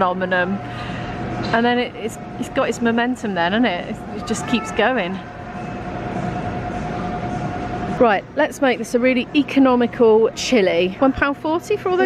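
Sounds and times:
mid-pitched whine: 0.0 - 12.0.

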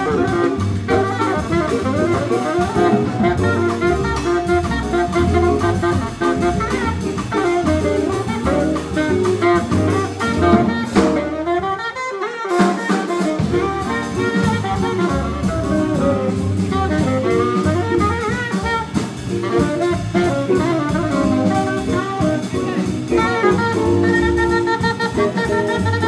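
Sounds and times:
upright bass: 0.0 - 11.8, 13.2 - 26.0
drum kit: 0.0 - 26.0
live jazz combo playing: 0.0 - 26.0
piano: 0.0 - 26.0
saxophone lead line: 0.0 - 26.0.

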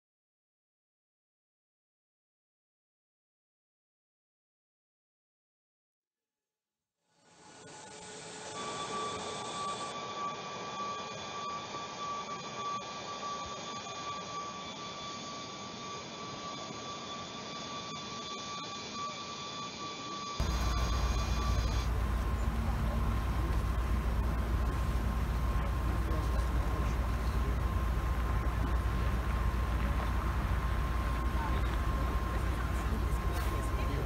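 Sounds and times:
jet engines whining: 7.6 - 34.0
car engines idling: 20.4 - 34.0.

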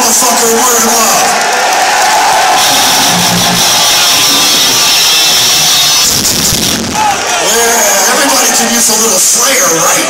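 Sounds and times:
crowd cheering: 0.1 - 10.0
amplified rock band: 2.1 - 7.4.

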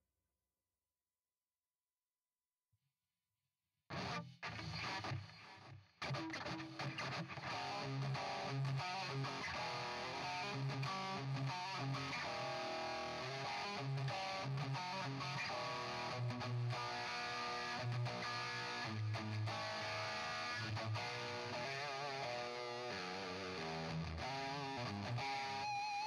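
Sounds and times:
distorted electric guitar: 3.9 - 26.0.

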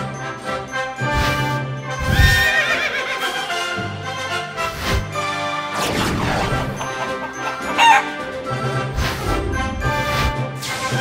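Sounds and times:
music: 0.0 - 11.0
horse whinny: 2.1 - 3.4.

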